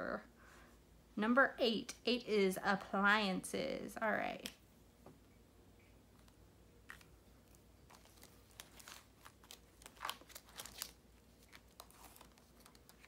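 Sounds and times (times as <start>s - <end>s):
plastic pouches crinkling: 6.2s - 13.0s.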